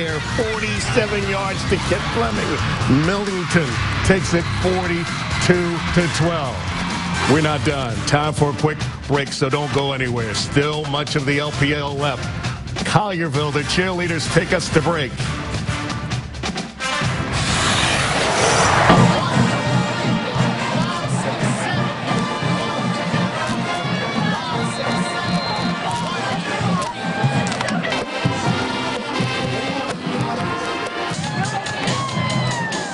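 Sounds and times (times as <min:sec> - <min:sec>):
cheerleaders cheering and shouting: 0:00.0 - 0:32.9
upbeat music with pulsing beat: 0:00.0 - 0:32.9.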